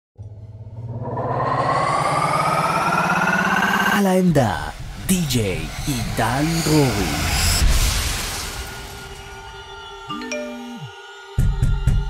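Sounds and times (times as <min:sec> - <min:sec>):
synthesizer riser: 0:00.2 - 0:10.9
fast pulsing bass: 0:00.9 - 0:07.4.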